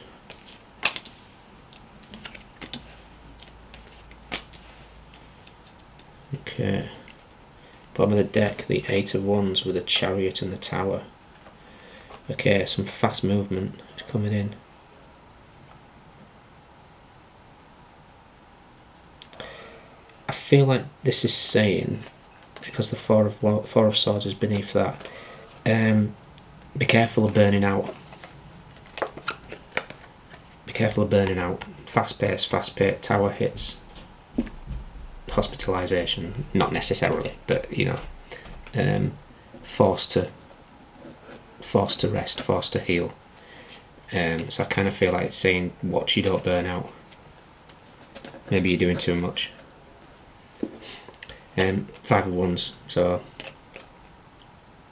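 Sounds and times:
cards clicking and rustling: 0.3s - 6.1s, 27.3s - 30.5s, 46.2s - 49.7s
card handling: 27.7s - 30.5s.

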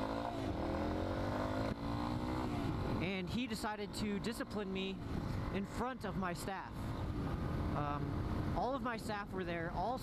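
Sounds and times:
motorcycle engine accelerating: 0.0s - 8.6s.

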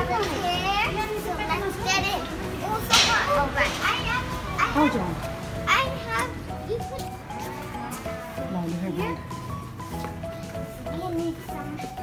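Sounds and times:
background music held notes: 0.0s - 12.0s
children chattering: 0.0s - 12.0s.

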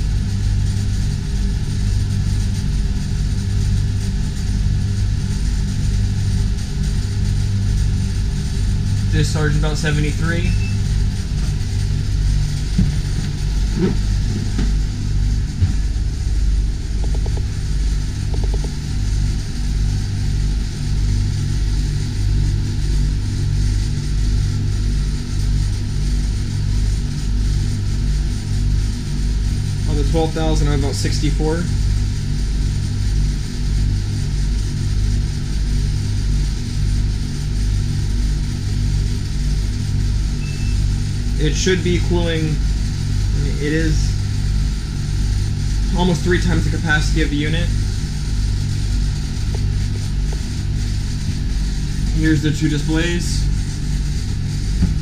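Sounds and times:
air-conditioning units humming: 0.0s - 55.0s.

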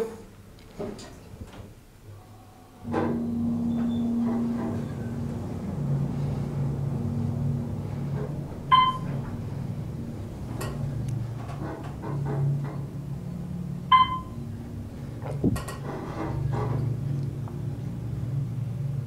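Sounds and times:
elevator car humming: 2.0s - 19.0s
electronic floor-passing beep: 8.7s - 9.1s, 13.9s - 14.4s.

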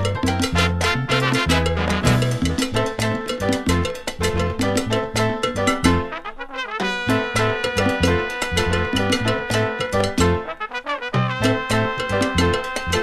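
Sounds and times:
instrumental salsa music: 0.0s - 13.0s.

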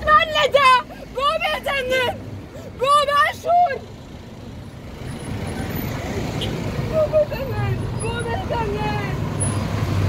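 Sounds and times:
road traffic rumble: 0.0s - 10.0s
heavy truck passing: 3.8s - 10.0s.

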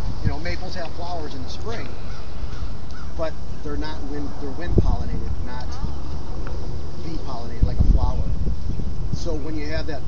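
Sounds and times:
wind rumble on microphone: 0.0s - 10.0s
crows cawing: 1.9s - 3.6s.

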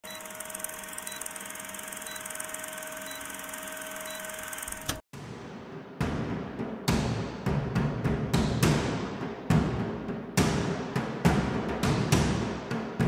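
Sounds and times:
film projector whirring and clattering: 0.0s - 5.0s
click: 4.7s - 5.0s.

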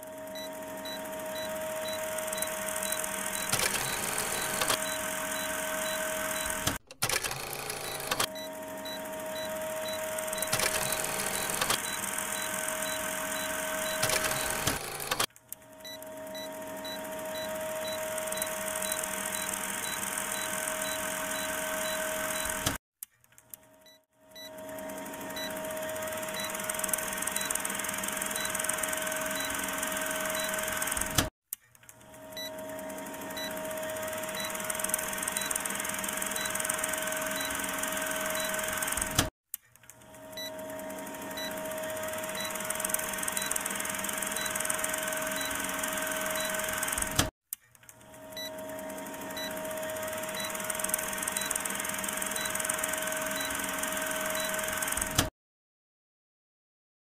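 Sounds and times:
machine-like hum and whir: 0.0s - 22.8s, 23.5s - 47.3s, 47.9s - 55.3s.

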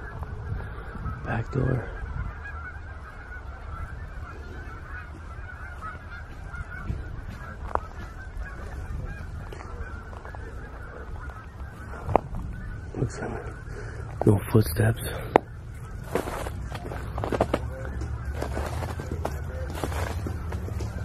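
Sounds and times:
geese honking: 0.0s - 21.0s.

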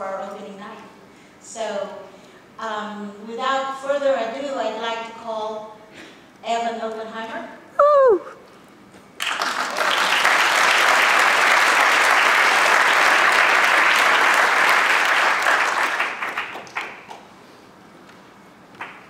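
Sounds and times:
audience applauding: 9.2s - 17.2s.

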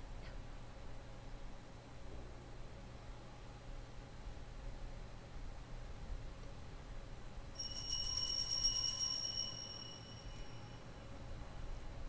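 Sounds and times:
small bells ringing rapidly: 7.6s - 10.8s.

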